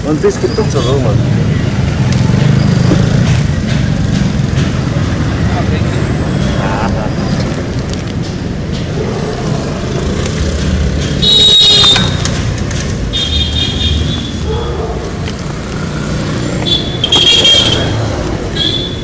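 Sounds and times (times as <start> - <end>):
passing vehicles rumbling: 0.0 - 19.0.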